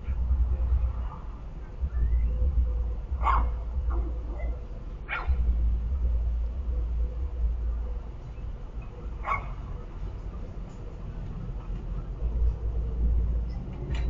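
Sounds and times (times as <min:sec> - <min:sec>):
low steady rumble: 0:00.0 - 0:14.0
dog barking: 0:03.2 - 0:05.5, 0:09.2 - 0:09.8.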